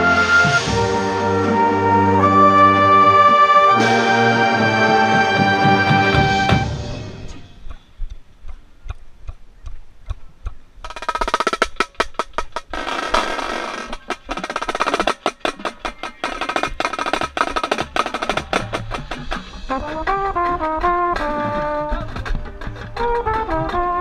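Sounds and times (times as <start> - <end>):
marching snare drum: 5.3 - 7.0, 10.8 - 24.0.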